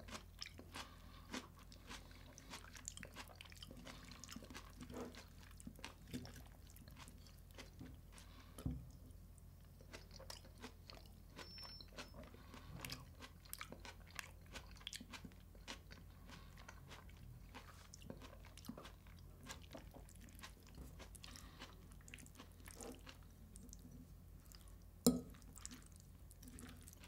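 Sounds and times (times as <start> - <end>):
crunchy chewing: 0.0 - 8.6, 9.6 - 24.8.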